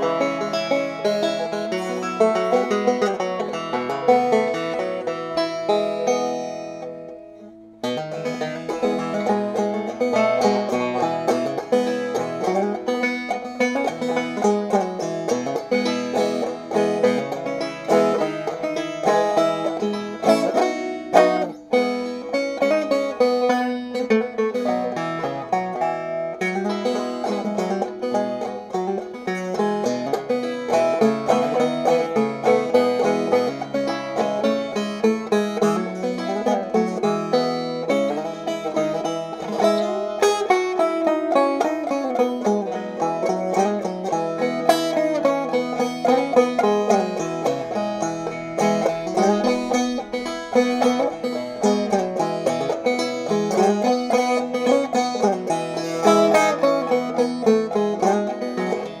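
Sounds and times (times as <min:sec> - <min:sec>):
banjo picking quick notes: 0:00.0 - 0:59.0.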